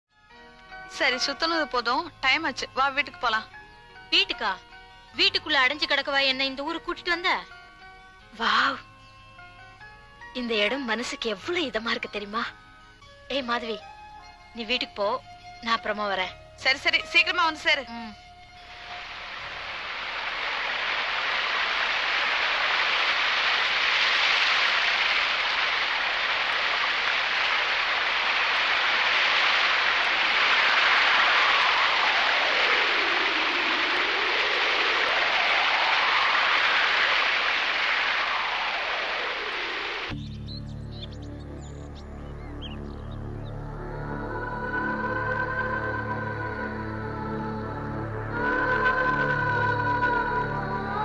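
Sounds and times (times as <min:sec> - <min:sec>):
music with low sustained tones: 0:00.1 - 0:21.3, 0:40.1 - 0:51.0
rushing waterfall-like noise: 0:18.6 - 0:40.2.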